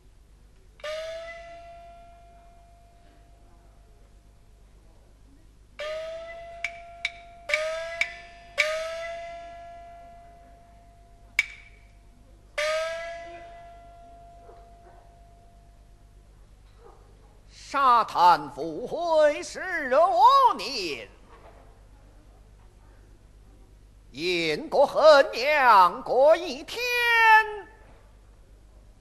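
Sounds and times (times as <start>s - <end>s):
small gong strokes ringing: 5.8s - 11.4s, 12.6s - 16.2s
sharp clapper clicks: 11.4s - 11.9s.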